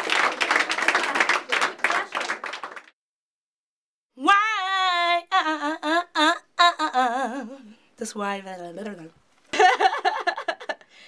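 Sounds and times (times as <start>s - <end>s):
woman singing unaccompanied: 4.2s - 7.7s.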